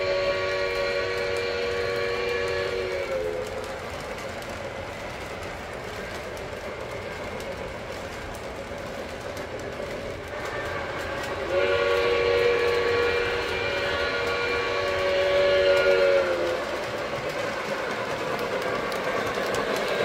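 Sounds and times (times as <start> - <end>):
model train steam whistle: 0.0 - 3.7, 10.4 - 17.0
model train rolling on track: 0.0 - 20.0.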